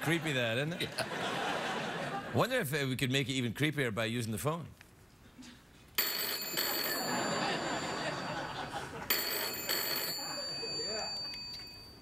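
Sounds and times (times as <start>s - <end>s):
telephone bell ringing: 6.0s - 12.0s.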